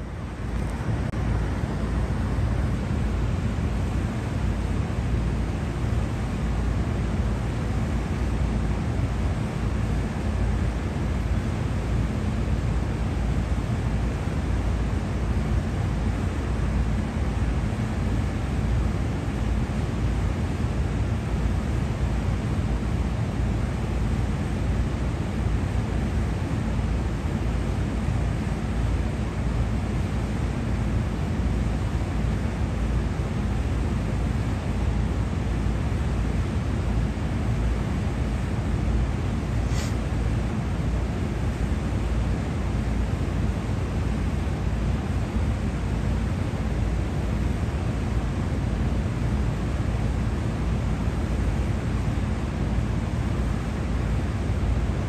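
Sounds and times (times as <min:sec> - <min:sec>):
city background roar: 0:00.0 - 0:55.0.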